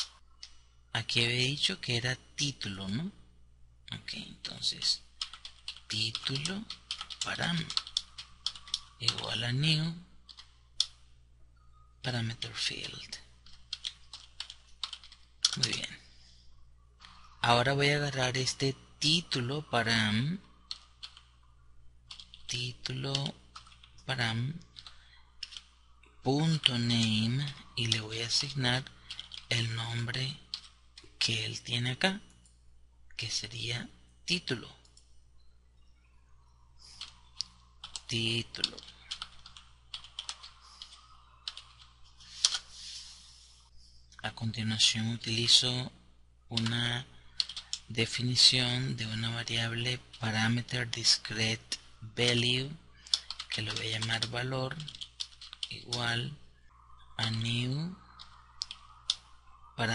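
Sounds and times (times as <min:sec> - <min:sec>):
keyboard typing clicks: 0:05.2 - 0:09.3, 0:12.3 - 0:15.9, 0:24.7 - 0:25.7, 0:37.0 - 0:42.6, 0:47.4 - 0:47.9, 0:53.0 - 0:56.0, 0:58.1 - 0:59.3.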